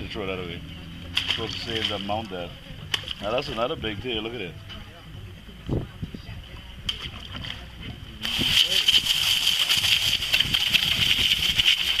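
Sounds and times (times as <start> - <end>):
water splashing: 0.7 - 4.2, 6.8 - 12.0
hose spraying water: 8.2 - 12.0.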